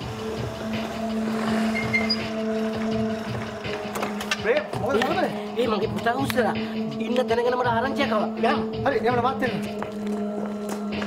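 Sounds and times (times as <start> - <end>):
motor scooter engine humming: 0.0 - 4.3.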